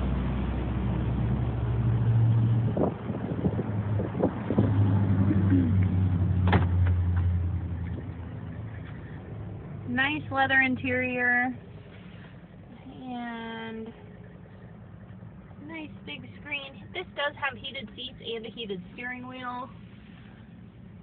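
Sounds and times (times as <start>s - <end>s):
vehicle engine idling hum: 0.0s - 21.0s.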